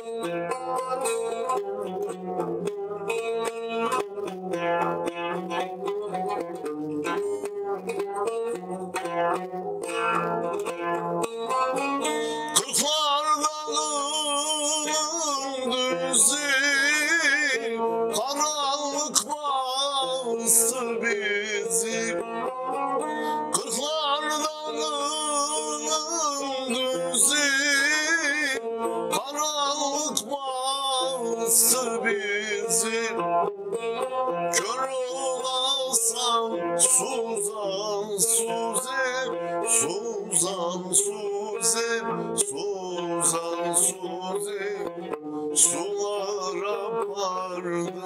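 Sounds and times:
plucked long-necked string instrument: 0.0 - 48.0
man singing with ornaments: 12.3 - 33.3, 34.5 - 45.0, 45.6 - 48.0.

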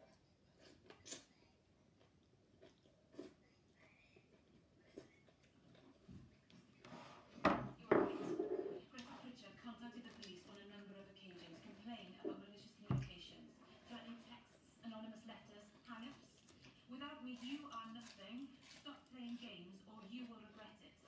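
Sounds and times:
person chewing: 0.1 - 6.5.

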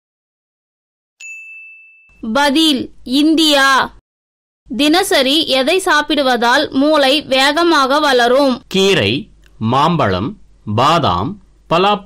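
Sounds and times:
bright electronic ding: 1.2 - 2.2.

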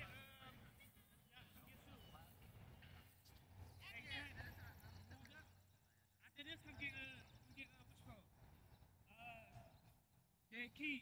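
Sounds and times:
distant people's voices: 0.0 - 11.0.

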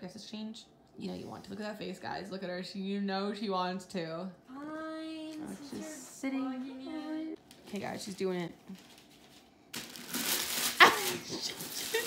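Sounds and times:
wrapping paper tearing and crinkling: 8.7 - 12.0.

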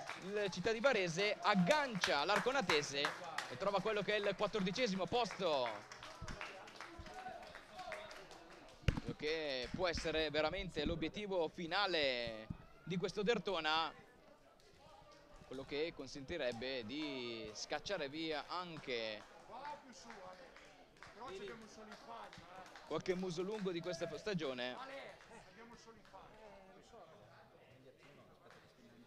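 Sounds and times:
faint distant voices: 0.0 - 29.0
stadium background noise: 0.0 - 29.0.

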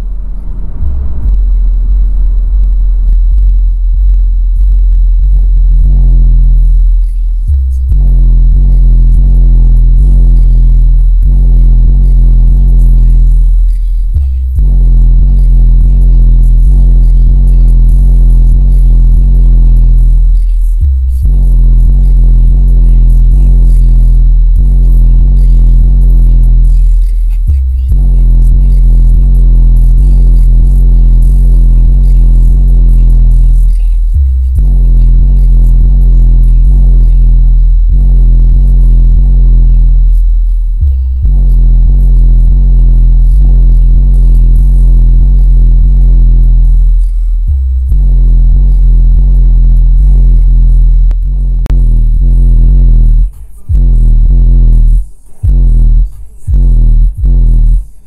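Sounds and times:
bass-heavy electronic music: 0.0 - 58.0.

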